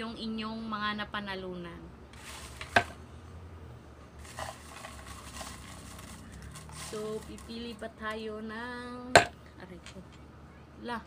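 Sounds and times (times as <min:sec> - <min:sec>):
paper slips rustling: 0:02.2 - 0:02.9, 0:04.2 - 0:07.8.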